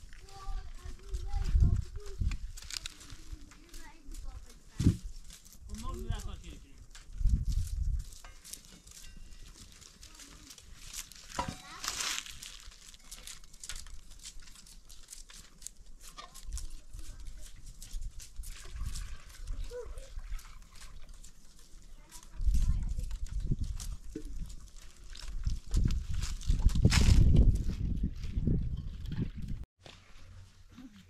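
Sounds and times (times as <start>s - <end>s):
rustling: 0.0s - 28.4s
low rumbles on microphone: 25.4s - 29.7s.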